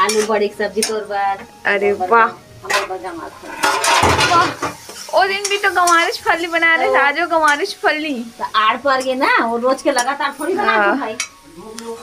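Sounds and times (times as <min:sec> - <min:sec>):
metal ladle scraping metal pan: 0:02.7 - 0:05.1.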